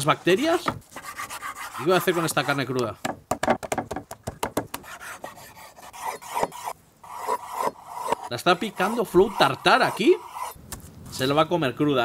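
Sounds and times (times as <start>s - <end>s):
knife scraping through meat: 4.9s - 10.6s.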